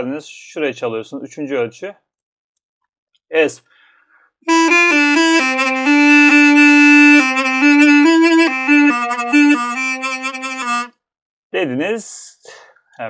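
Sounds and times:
double-reed wind instrument melody: 4.5s - 10.9s.

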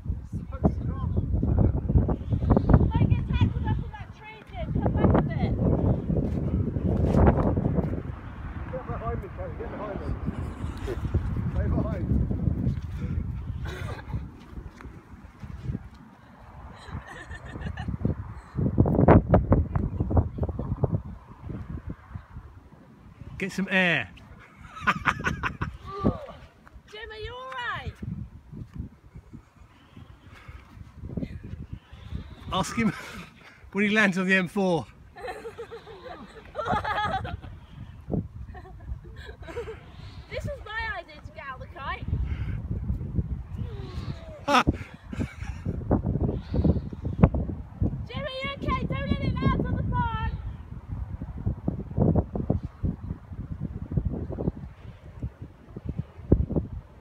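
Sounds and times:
wind buffeting microphone: 0.0s - 57.0s
person laughing: 13.6s - 14.3s, 16.8s - 18.0s, 24.5s - 26.1s, 35.2s - 37.5s, 38.5s - 39.9s, 44.2s - 45.8s.

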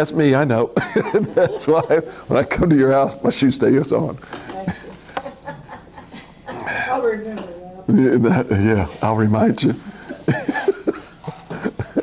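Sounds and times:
man laughing: 0.8s - 2.3s, 9.9s - 12.0s.

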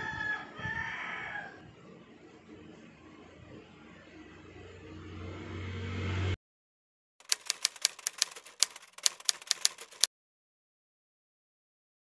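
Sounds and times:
typewriter key clicks: 7.2s - 10.1s.

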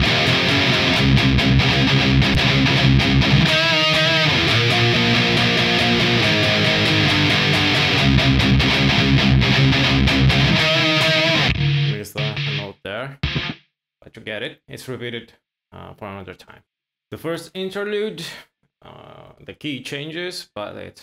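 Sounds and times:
distorted electric guitar chugging riff: 0.0s - 13.6s.

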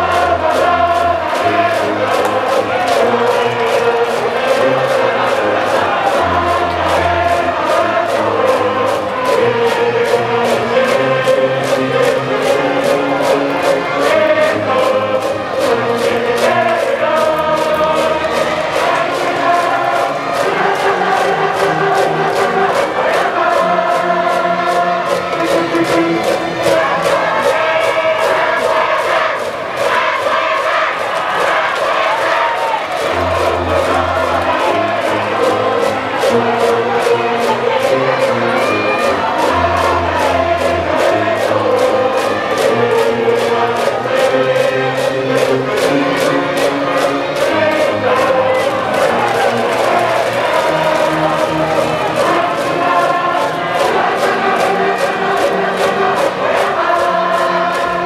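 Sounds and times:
brass band playing: 0.0s - 58.0s
crowd singing and chanting: 0.0s - 58.0s
steady drum beat: 0.0s - 58.0s.

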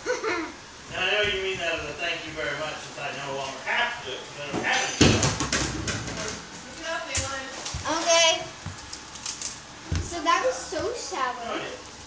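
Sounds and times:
voices talking and exclaiming: 6.2s - 8.6s, 9.8s - 11.8s.

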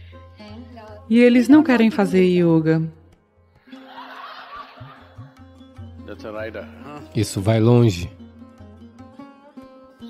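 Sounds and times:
soft background music: 0.0s - 10.0s
audience laughing: 3.7s - 5.4s.

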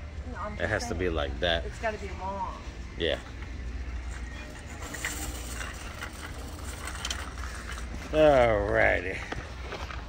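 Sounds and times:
shopping cart rolling on concrete: 3.8s - 9.2s.

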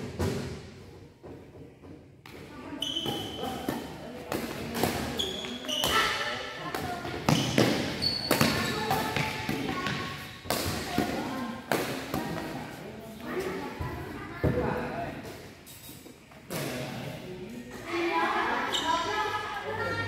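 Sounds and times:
shoes squeaking on court floor: 2.6s - 6.4s, 7.0s - 10.8s, 18.6s - 19.1s
rackets hitting shuttlecock: 3.0s - 12.5s.

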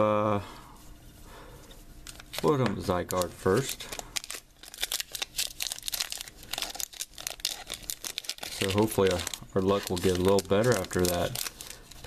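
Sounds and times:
foil wrapper crinkling and tearing: 2.0s - 12.0s.

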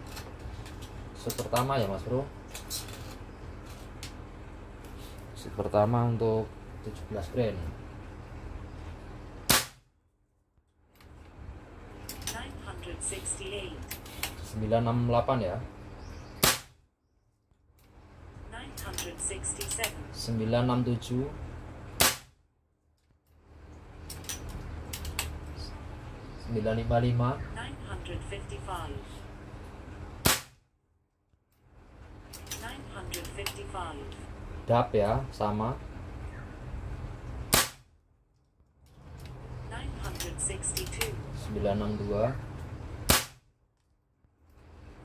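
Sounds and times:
air rifle shot: 9.5s - 9.8s, 16.4s - 16.8s, 22.0s - 22.4s, 30.2s - 30.6s, 37.5s - 37.9s, 43.1s - 43.4s.

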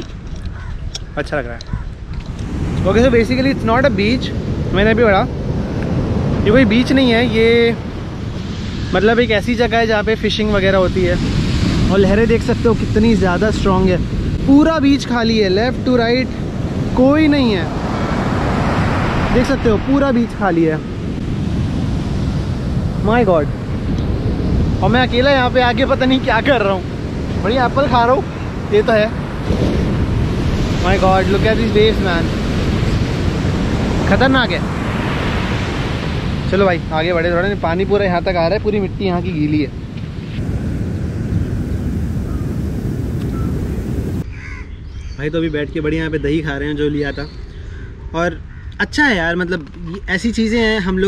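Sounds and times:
wind rumbling on microphone: 0.0s - 51.0s
ocean surf breaking: 2.4s - 44.3s
bird call: 43.2s - 43.7s, 44.3s - 45.2s.

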